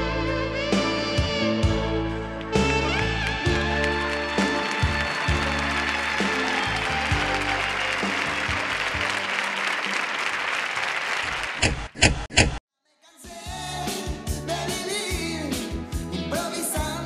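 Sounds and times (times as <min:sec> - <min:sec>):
live band playing ballad: 0:00.0 - 0:09.6, 0:13.4 - 0:17.0
audience applause: 0:02.8 - 0:12.0.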